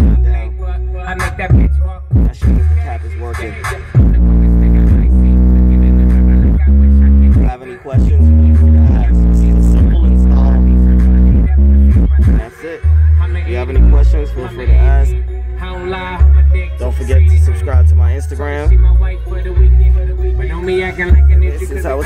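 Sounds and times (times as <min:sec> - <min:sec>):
hip-hop song through car subwoofers: 0:00.0 - 0:22.0.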